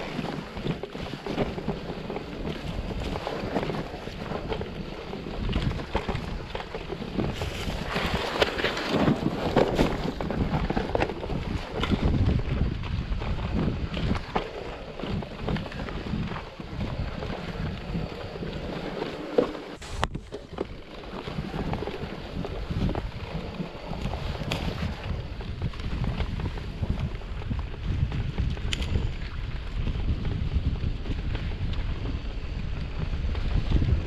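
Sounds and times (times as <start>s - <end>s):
bike knocking and rattling: 0.0s - 34.0s
bike tyres rumbling on dirt: 0.0s - 34.0s
wind noise on microphone: 0.0s - 34.0s.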